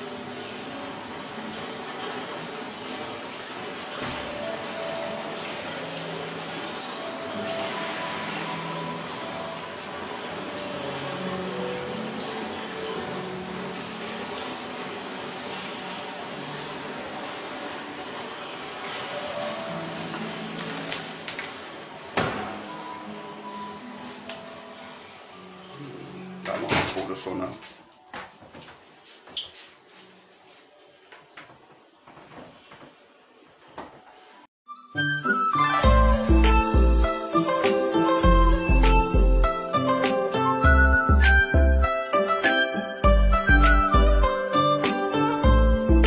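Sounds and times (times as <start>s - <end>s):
running water in a pool: 0.0s - 27.2s, 35.0s - 46.0s
background music: 0.0s - 28.3s, 34.7s - 46.0s.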